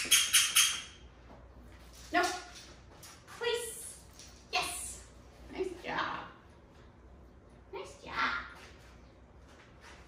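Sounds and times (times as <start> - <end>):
squeaky dog toy: 0.0 - 1.0.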